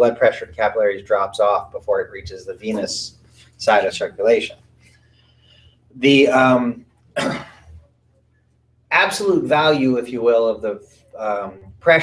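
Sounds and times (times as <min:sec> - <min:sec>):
man clearing throat: 0:07.2 - 0:07.7.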